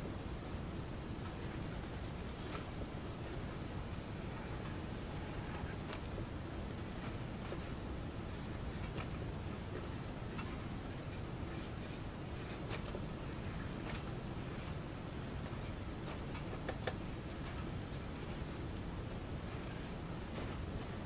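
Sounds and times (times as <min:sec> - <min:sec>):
low room noise: 0:00.0 - 0:21.0.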